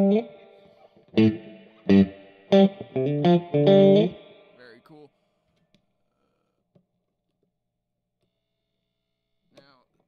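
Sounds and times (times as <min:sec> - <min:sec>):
faint guitar amp hum: 0:00.0 - 0:00.5, 0:01.1 - 0:04.5.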